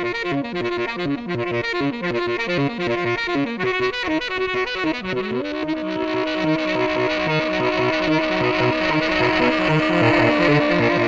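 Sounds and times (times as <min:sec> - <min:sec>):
saxophone playing: 0:00.0 - 0:11.0.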